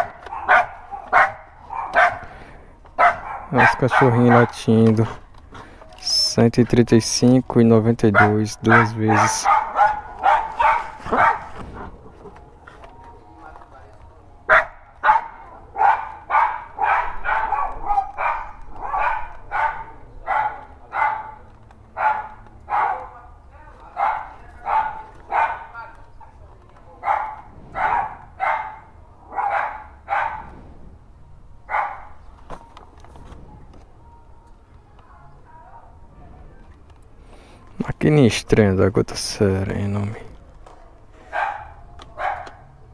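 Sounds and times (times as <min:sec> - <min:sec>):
small dogs barking: 0:00.0 - 0:02.4, 0:03.0 - 0:05.1, 0:08.1 - 0:12.0, 0:14.4 - 0:26.3, 0:27.0 - 0:30.5, 0:31.6 - 0:32.3, 0:41.2 - 0:42.9.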